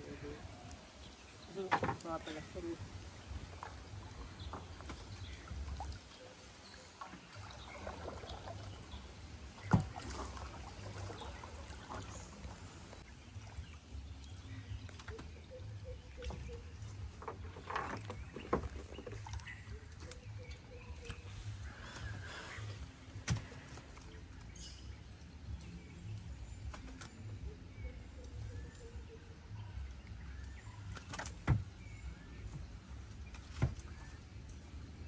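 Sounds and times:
sharp knocks on wooden canoe: 1.6 - 2.2, 9.6 - 10.5, 31.0 - 31.8.

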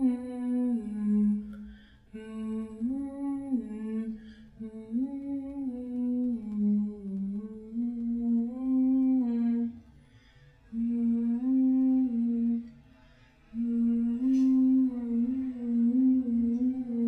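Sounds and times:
person humming a slow melody: 0.0 - 9.8, 10.7 - 12.7, 13.5 - 17.0.

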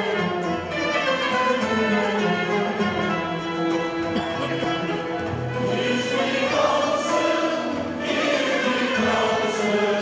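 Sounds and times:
mixed choir singing: 5.5 - 10.0.

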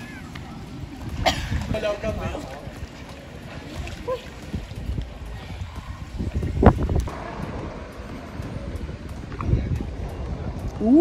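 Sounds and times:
swimmer splashing: 0.0 - 9.0
wind buffeting microphone: 0.0 - 11.0.

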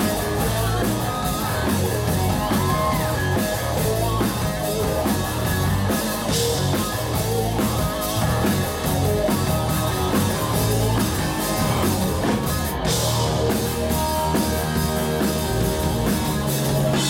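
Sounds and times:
bass guitar: 0.0 - 17.0
drum kit: 0.0 - 17.0
electric guitars: 0.0 - 17.0.

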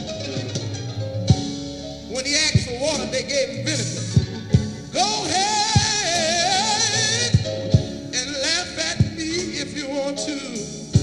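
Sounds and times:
gospel band playing: 0.0 - 11.0
lead voice singing melismatic line: 2.1 - 10.7.

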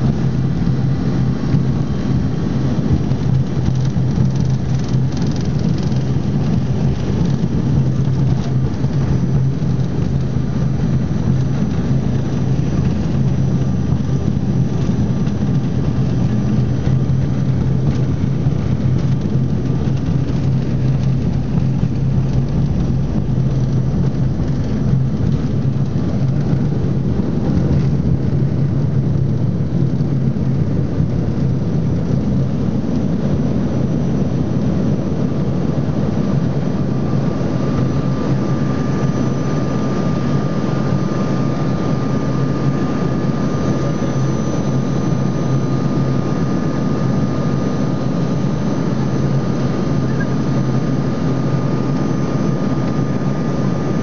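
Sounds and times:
constant low hum: 0.0 - 54.0
jet cabin low rumble: 0.0 - 54.0.

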